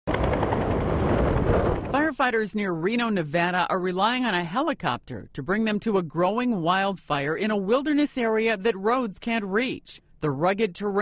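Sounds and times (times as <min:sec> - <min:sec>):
helicopter rotor chopping: 0:00.1 - 0:02.0.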